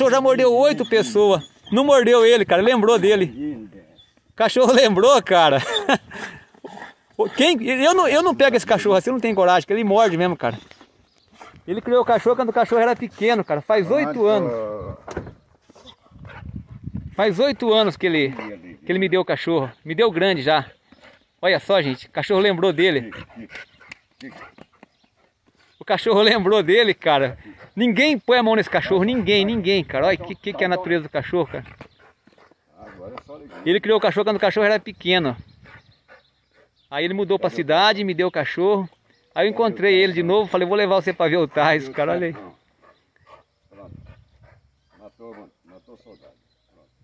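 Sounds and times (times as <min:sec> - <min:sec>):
dog panting: 0:11.2 - 0:11.8, 0:15.8 - 0:18.8, 0:20.7 - 0:25.8, 0:27.2 - 0:28.0, 0:31.3 - 0:34.1, 0:35.4 - 0:36.9, 0:41.3 - 0:46.9.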